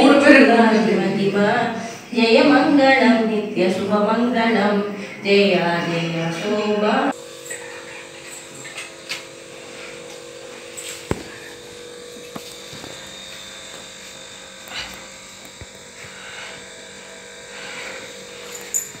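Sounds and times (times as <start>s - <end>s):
low hum: 0.0s - 19.0s.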